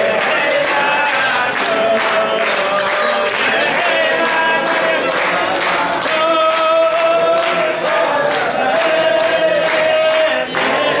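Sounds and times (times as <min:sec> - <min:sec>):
group singing together: 0:00.0 - 0:11.0
hand clapping in time: 0:00.0 - 0:11.0.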